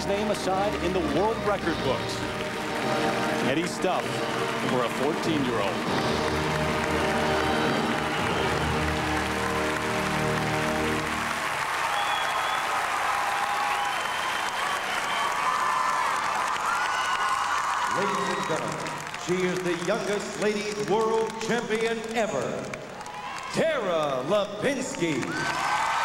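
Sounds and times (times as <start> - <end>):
orchestral music: 0.0 - 11.9
crowd applause and cheering: 0.0 - 26.0.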